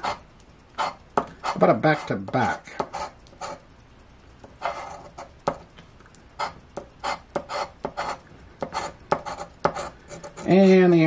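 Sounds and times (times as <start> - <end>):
coin scraping scratch-off ticket: 0.8 - 3.6, 4.6 - 5.3, 6.4 - 10.8.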